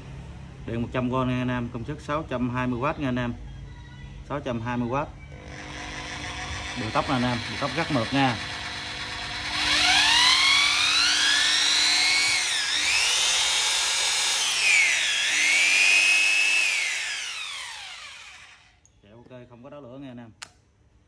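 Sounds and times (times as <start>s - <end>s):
hammer drill motor whine: 5.4s - 18.8s.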